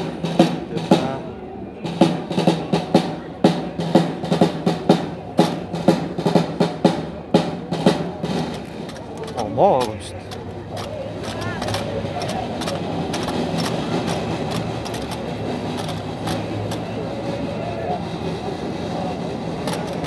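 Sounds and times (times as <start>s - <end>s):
outdoor crowd murmur: 0.0s - 20.0s.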